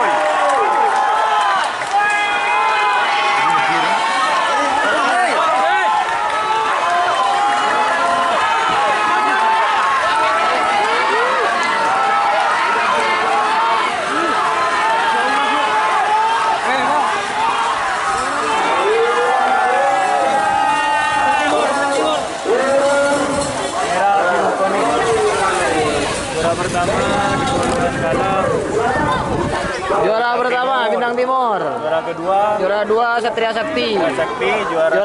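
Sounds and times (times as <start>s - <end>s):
crowd shouting and yelling: 0.0s - 35.0s.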